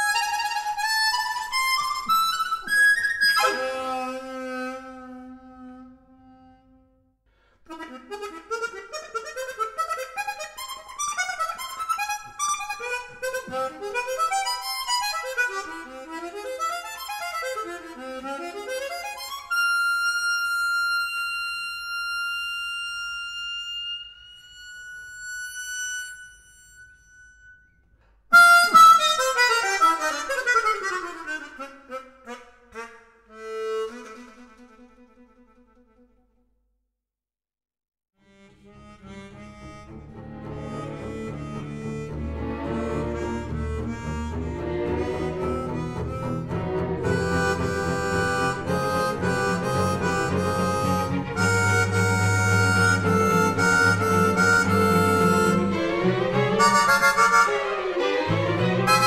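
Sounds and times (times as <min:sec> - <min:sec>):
solo harmonica playing: 0:00.0 - 0:35.9, 0:38.2 - 0:59.0.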